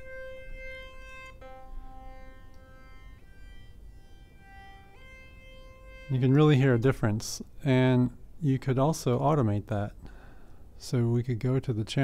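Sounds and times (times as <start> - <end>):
synth lead held notes: 0.0 - 7.2.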